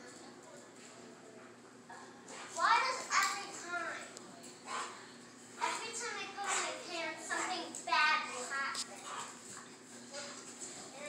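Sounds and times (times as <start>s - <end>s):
dogs play-wrestling: 0.0s - 11.0s.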